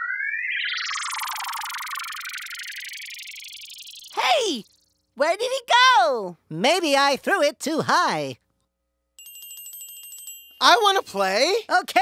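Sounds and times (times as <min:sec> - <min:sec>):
cartoon rising whistle: 0:00.0 - 0:04.3.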